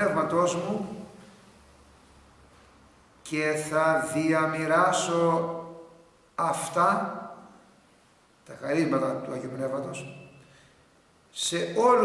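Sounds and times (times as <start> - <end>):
low even hiss: 0.0 - 12.0.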